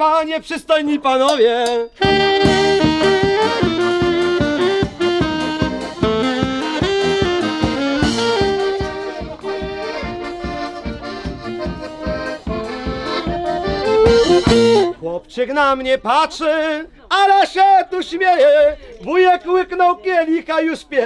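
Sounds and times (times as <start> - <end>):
accordion: 1.6 - 15.0
folk band playing: 1.6 - 15.0
saxophone: 1.9 - 15.0.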